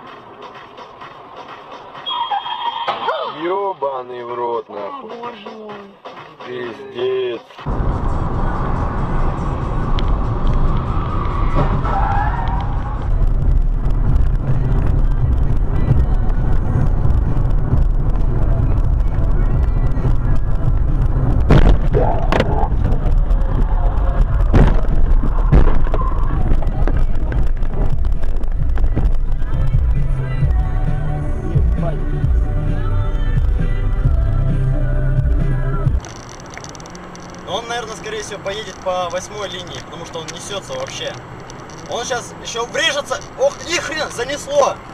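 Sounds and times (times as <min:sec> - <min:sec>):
music: 0:00.0 - 0:03.2, 0:03.8 - 0:10.9, 0:12.9 - 0:21.8, 0:22.4 - 0:36.0
people talking: 0:03.1 - 0:07.6, 0:21.9 - 0:24.4, 0:37.5 - 0:41.2, 0:41.9 - 0:44.8
vehicle driving rumble: 0:07.6 - 0:44.9.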